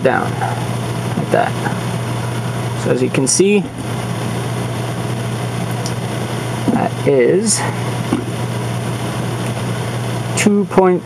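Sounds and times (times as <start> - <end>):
machine humming and hissing: 0.0 - 11.0.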